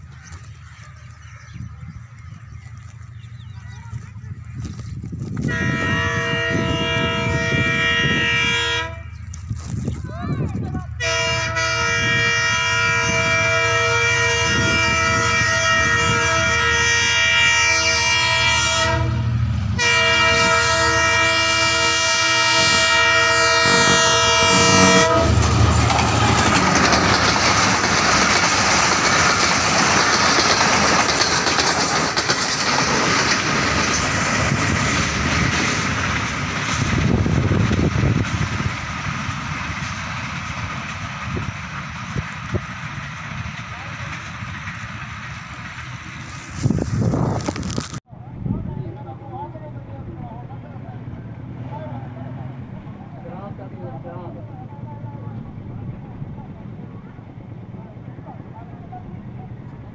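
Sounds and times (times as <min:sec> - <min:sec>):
train passing with wheel rattle: 0:00.0 - 0:59.9
train air horn blasts: 0:05.4 - 0:09.2, 0:11.0 - 0:25.9.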